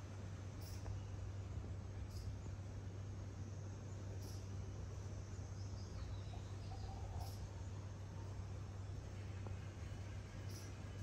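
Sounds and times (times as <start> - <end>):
faint hiss: 0.0 - 11.0
steady low hum: 0.0 - 11.0.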